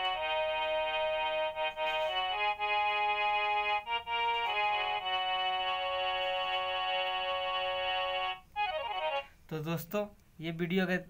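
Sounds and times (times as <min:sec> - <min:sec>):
harmonium chord through phone speaker: 0:00.0 - 0:09.3.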